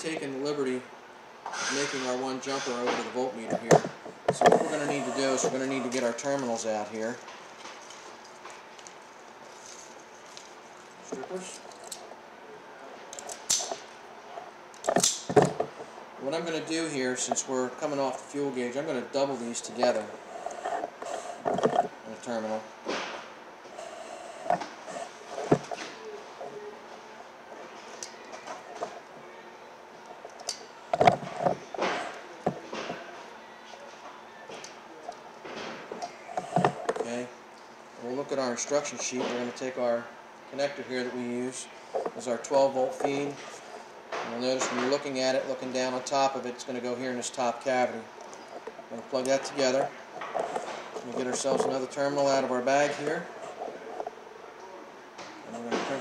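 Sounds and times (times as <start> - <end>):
low room hiss: 0.0 - 56.0
wire rustling: 1.7 - 12.1, 47.8 - 54.2
small parts clicking and rustling: 7.1 - 12.0.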